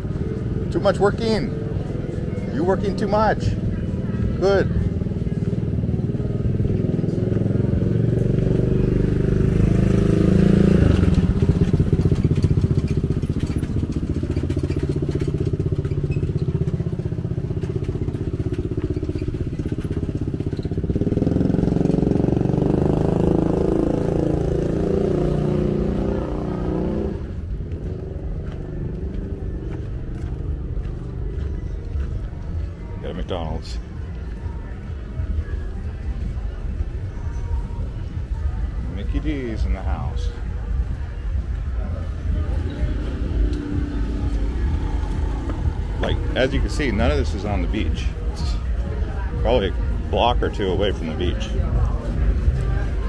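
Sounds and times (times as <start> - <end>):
motorbikes passing: 0.0 - 53.0.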